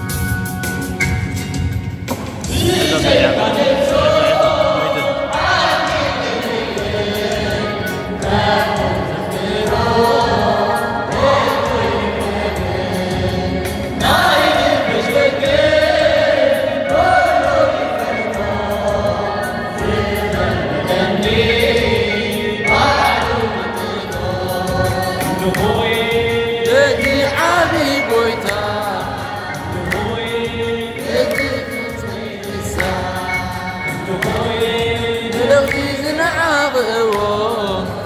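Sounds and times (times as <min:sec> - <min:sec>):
choir singing a hymn: 0:02.4 - 0:38.0.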